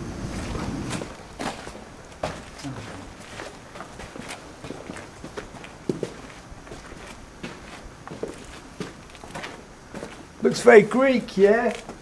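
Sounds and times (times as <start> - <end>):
footsteps on dirt and stone path: 0.0 - 10.8, 11.5 - 12.0.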